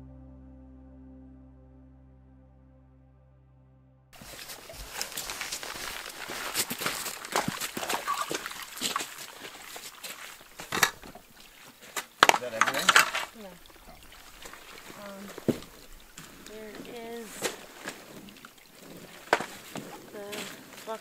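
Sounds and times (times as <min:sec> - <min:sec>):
indistinct voices: 0:12.3 - 0:14.1, 0:14.7 - 0:18.2, 0:19.0 - 0:21.0.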